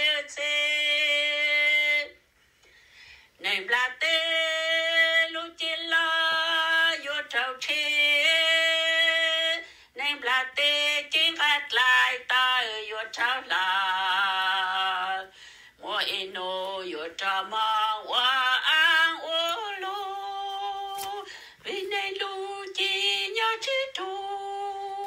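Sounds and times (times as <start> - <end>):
singer breathing: 2.4 - 3.4, 9.6 - 10.0, 15.3 - 15.8, 21.2 - 21.7
person singing slow melody: 3.4 - 25.0.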